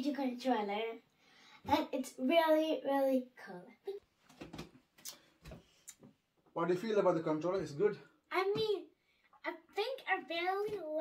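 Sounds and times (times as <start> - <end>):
faint clicks and soft knocks: 4.0 - 6.6.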